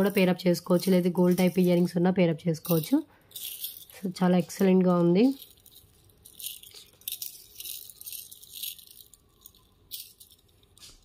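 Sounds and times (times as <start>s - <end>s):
metal chains jingling: 0.0s - 2.0s, 2.6s - 11.0s.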